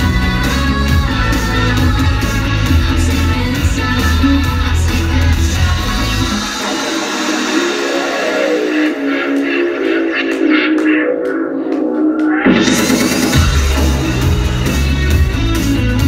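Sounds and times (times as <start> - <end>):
electronic rock music: 0.0 - 16.0
steady synth notes: 0.0 - 16.0.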